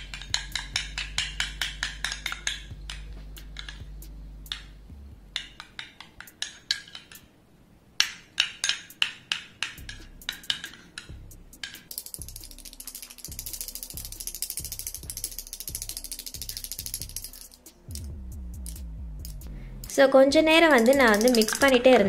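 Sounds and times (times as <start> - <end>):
fast ticking rattle: 8.7 - 19.5, 20.4 - 22.0
spoon clinking against glass: 20.7 - 21.9.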